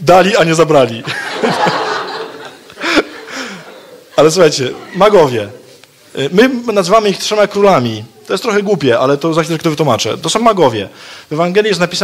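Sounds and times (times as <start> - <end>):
audience laughing: 1.0 - 5.8.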